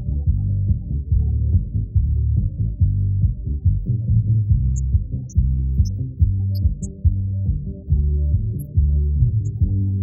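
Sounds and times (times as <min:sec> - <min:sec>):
strong low beats: 0:00.0 - 0:10.0.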